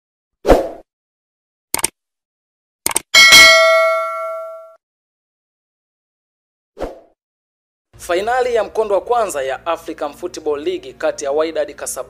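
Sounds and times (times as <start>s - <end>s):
notification bell ding: 3.2s - 4.8s.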